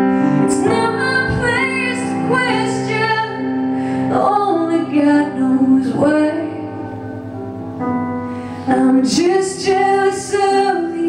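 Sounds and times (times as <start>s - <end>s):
keyboard chords: 0.0s - 11.0s
woman singing: 0.4s - 7.0s, 8.7s - 11.0s.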